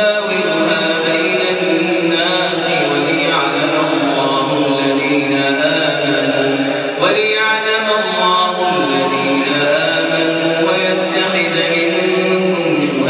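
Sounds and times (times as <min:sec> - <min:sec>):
man chanting recitation: 0:00.0 - 0:13.0.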